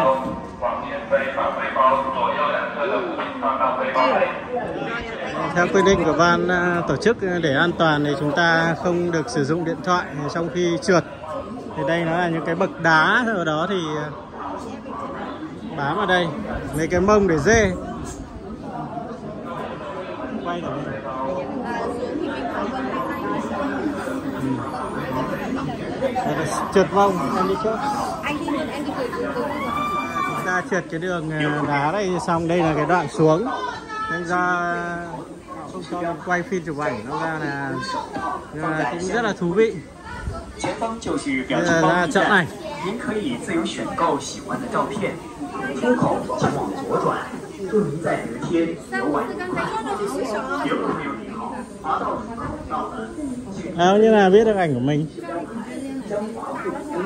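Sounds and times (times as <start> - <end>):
people chattering: 0.0 - 57.0.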